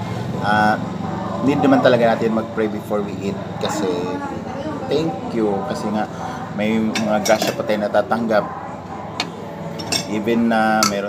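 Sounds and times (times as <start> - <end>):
dishes and utensils clinking: 6.8 - 7.8, 9.1 - 11.0.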